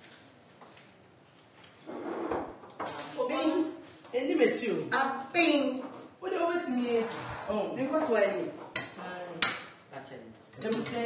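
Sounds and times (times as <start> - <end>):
sliding scraping on counter: 1.8 - 3.1.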